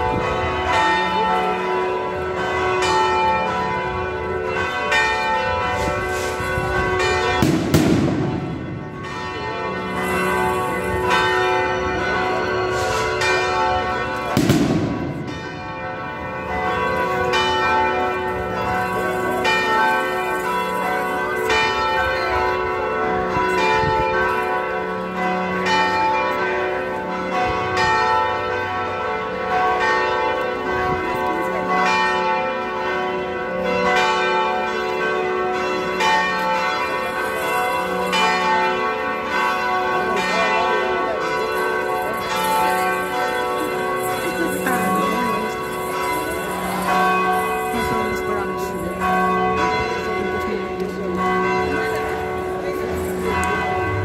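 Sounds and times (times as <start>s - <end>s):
church bells pealing: 0.0s - 54.0s.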